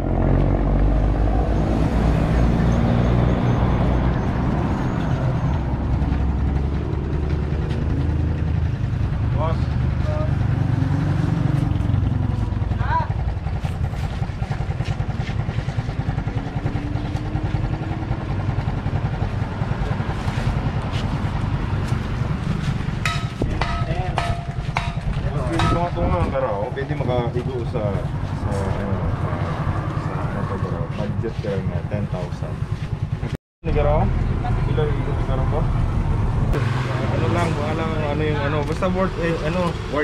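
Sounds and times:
vehicle engine humming: 0:00.0 - 0:40.0.

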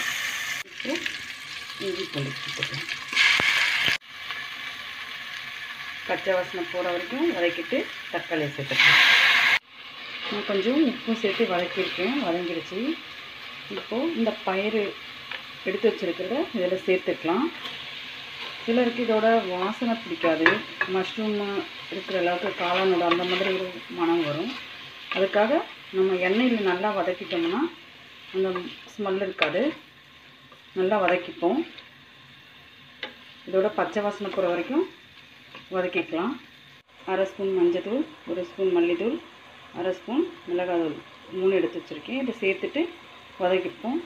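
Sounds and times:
onion and tomato sizzling in oil: 0:00.0 - 0:44.0
person's voice: 0:01.8 - 0:02.9, 0:13.7 - 0:14.9
person speaking: 0:01.8 - 0:03.0
spatula stirring: 0:19.6 - 0:29.8
wooden spatula stirring: 0:22.0 - 0:25.5.

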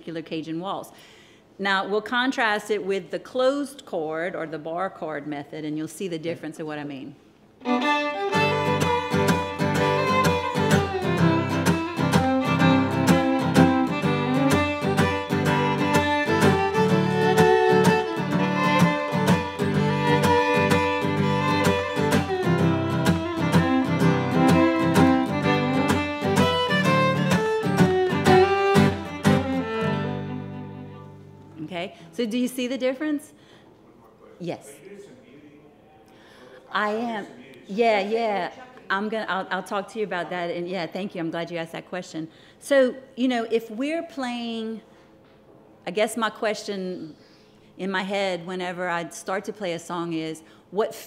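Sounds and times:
fiddle playing a waltz: 0:07.6 - 0:31.4
acoustic guitar strumming: 0:07.7 - 0:31.5.

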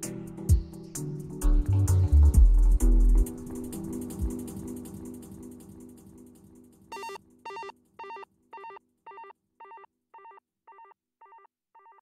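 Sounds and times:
low bass: 0:01.4 - 0:04.4.

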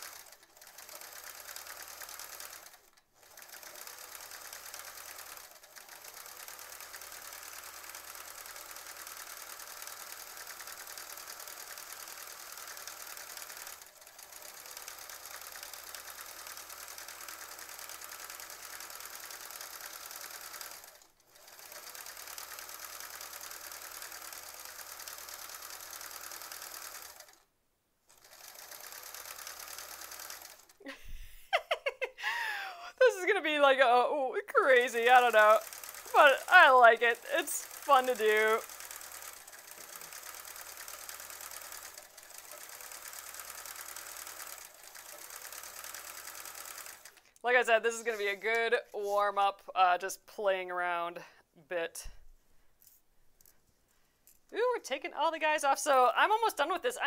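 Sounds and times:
sewing machine stitching: 0:00.0 - 0:27.5, 0:28.1 - 0:31.0, 0:34.5 - 0:49.3.

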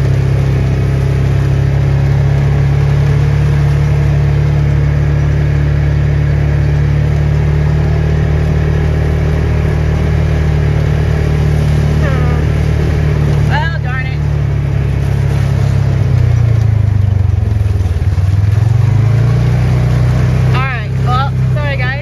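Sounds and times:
vehicle engine droning: 0:00.0 - 0:22.0.

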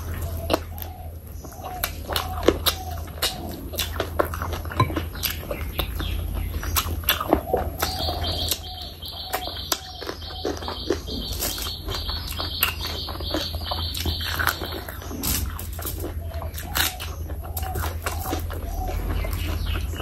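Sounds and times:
wet chewing and lip smacking: 0:00.0 - 0:20.0.

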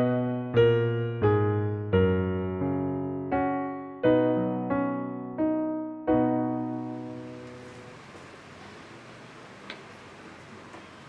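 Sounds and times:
electric piano chord: 0:00.0 - 0:08.9
faint room noise: 0:06.4 - 0:11.0.

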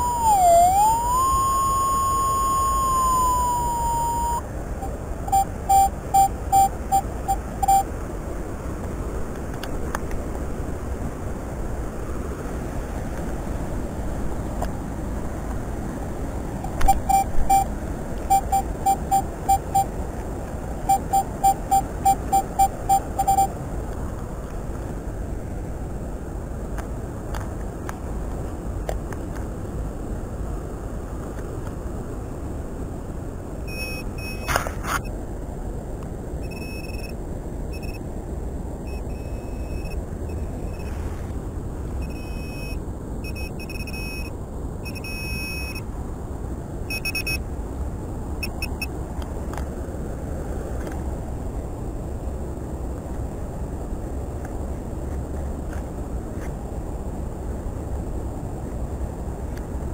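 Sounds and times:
pinpointer short beeps: 0:00.0 - 0:04.4, 0:05.3 - 0:07.9, 0:16.7 - 0:17.7, 0:18.3 - 0:19.9, 0:20.9 - 0:23.5, 0:33.7 - 0:34.5, 0:36.4 - 0:37.1, 0:37.8 - 0:38.0, 0:38.9 - 0:40.9, 0:42.0 - 0:44.3, 0:44.9 - 0:45.8, 0:46.9 - 0:47.4, 0:48.4 - 0:48.9
higher-pitched detector beeps: 0:00.0 - 0:07.9, 0:16.7 - 0:17.7, 0:18.3 - 0:19.9, 0:20.9 - 0:23.5, 0:33.7 - 0:35.1, 0:36.4 - 0:38.0, 0:38.9 - 0:41.0, 0:42.0 - 0:45.8, 0:46.9 - 0:47.4, 0:48.4 - 0:48.9.

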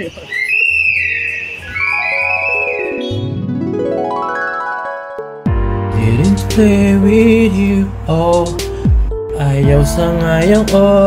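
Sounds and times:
sliding whistle-like tone: 0:00.4 - 0:03.4
low steady bass: 0:05.5 - 0:11.0.

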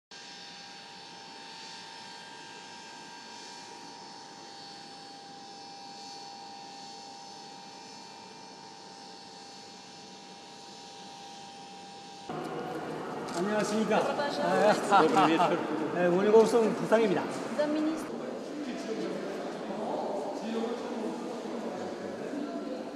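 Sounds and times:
steady mechanical whine: 0:00.2 - 0:18.4.

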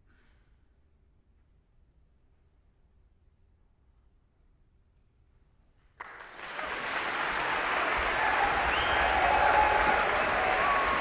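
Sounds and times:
audience applause: 0:06.0 - 0:11.0
cheers: 0:06.0 - 0:11.0.

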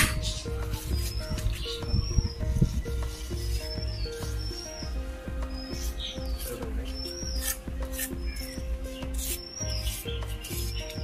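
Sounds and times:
background music with beat: 0:00.0 - 0:11.0
trowel scraping wet cement: 0:07.4 - 0:11.0.

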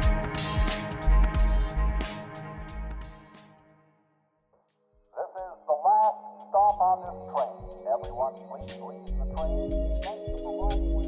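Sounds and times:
recorded announcement voice: 0:05.1 - 0:10.9.

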